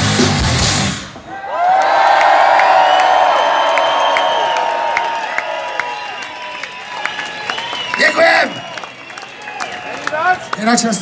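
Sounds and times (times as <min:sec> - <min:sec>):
rock band music: 0:00.0 - 0:01.3
crowd cheering and shouting: 0:01.1 - 0:11.0
people clapping: 0:01.6 - 0:11.0.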